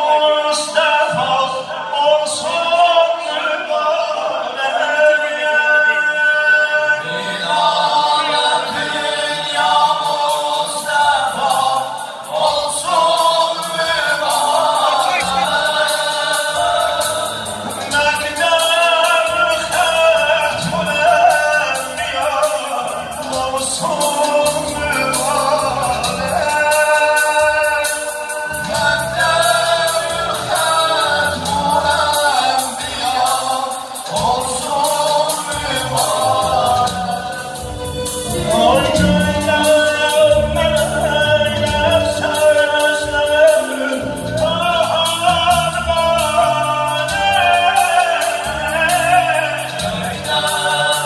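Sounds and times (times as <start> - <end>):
men singing through pa: 0.0 - 51.0
electronic keyboard with beat: 9.6 - 51.0.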